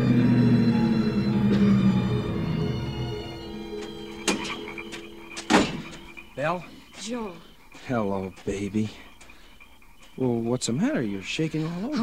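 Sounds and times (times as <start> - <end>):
held music chord: 0.0 - 6.6
door thump: 5.4 - 6.0.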